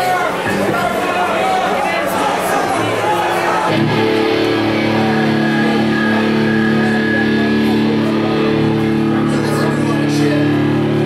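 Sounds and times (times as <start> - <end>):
electric guitar chord ringing: 3.7 - 11.0.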